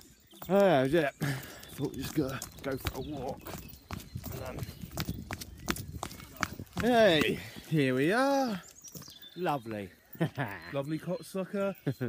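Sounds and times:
footsteps on hard path: 0:00.0 - 0:09.7.

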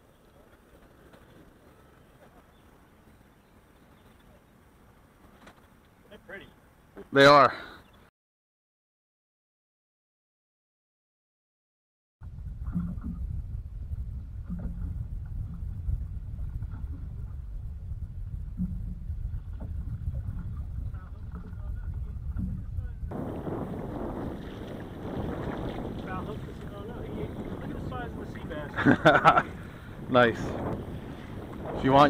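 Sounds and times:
wind rumbling on microphone: 0:12.2 - 0:32.0.

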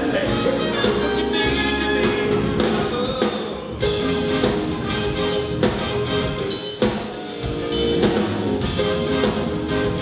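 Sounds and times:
horn section holding notes: 0:00.0 - 0:02.7, 0:03.8 - 0:06.8, 0:07.4 - 0:10.0
live rock band playing: 0:00.0 - 0:10.0.

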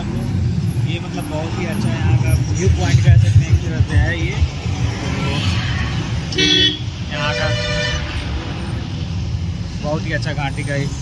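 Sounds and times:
low traffic rumble: 0:00.0 - 0:11.0
vehicle horns: 0:05.7 - 0:08.4.

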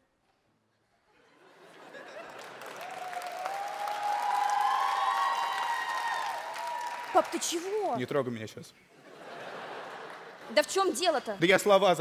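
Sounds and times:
audience applauding: 0:01.8 - 0:08.1
voices cheering: 0:02.7 - 0:07.8.

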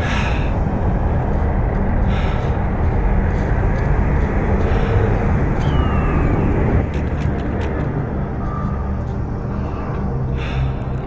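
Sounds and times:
wind buffeting microphone: 0:00.0 - 0:08.6.

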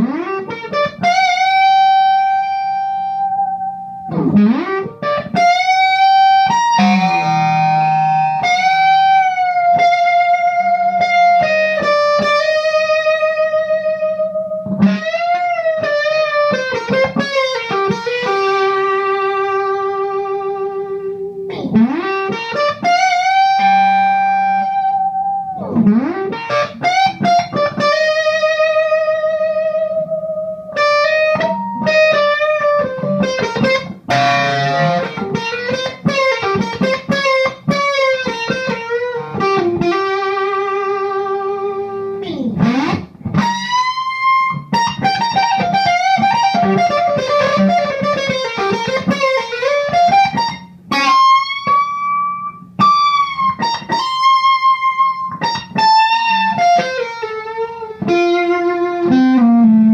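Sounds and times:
fuzz electric guitar lead: 0:00.0 - 0:59.9.

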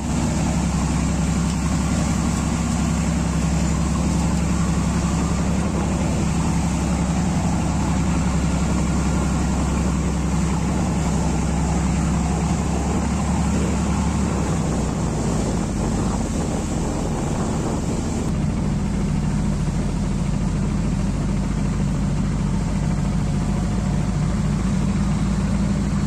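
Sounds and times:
wind noise: 0:00.0 - 0:18.4
boat engine humming: 0:00.0 - 0:26.0
water wash: 0:00.0 - 0:26.0.

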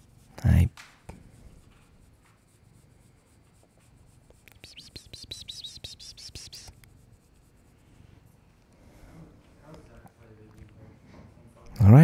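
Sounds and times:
fingers scratching cat fur: 0:00.0 - 0:00.4, 0:01.1 - 0:08.3.

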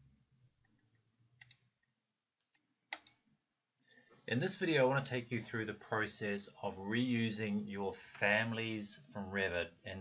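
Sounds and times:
faint computer mouse clicks: 0:01.4 - 0:01.7, 0:02.4 - 0:03.2.

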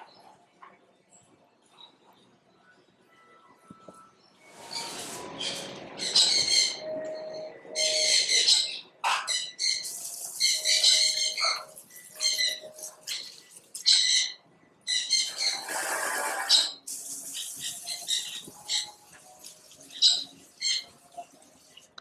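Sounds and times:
birds calling harshly: 0:04.6 - 0:06.9, 0:07.8 - 0:21.8.

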